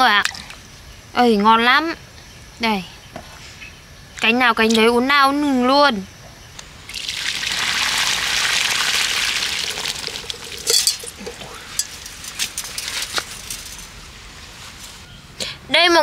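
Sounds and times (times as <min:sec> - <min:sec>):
water splashing onto concrete: 0:06.9 - 0:12.7
clinks and soft knocks: 0:10.1 - 0:13.9.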